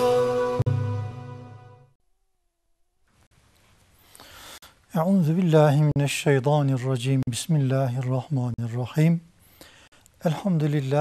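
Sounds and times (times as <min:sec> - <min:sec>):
faint studio room noise: 0:03.0 - 0:11.0.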